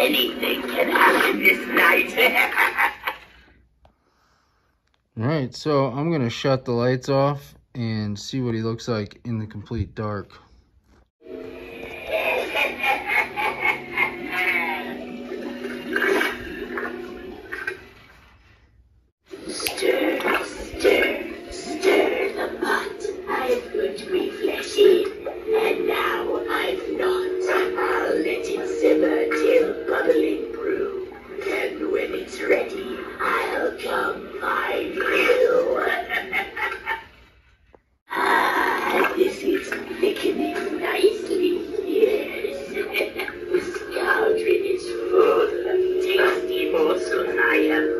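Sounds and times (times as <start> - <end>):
spooky recorded voice: 0.0 - 3.5, 11.3 - 17.7, 19.3 - 37.0, 38.1 - 47.9
bubbling cauldron sound effect: 15.1 - 18.3.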